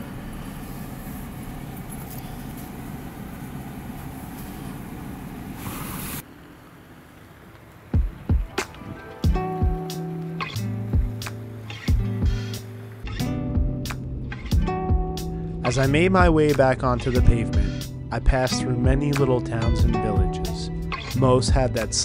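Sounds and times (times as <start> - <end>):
vehicle engine and tyres rumbling: 0.0 - 22.0
plucked guitar music: 8.0 - 22.0.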